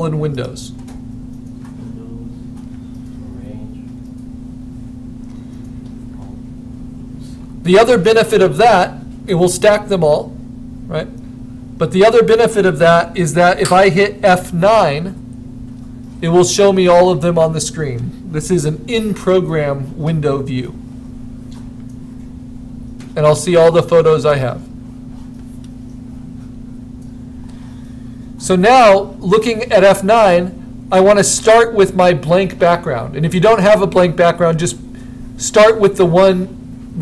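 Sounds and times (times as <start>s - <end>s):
low electrical hum with rumble: 0.0s - 37.0s.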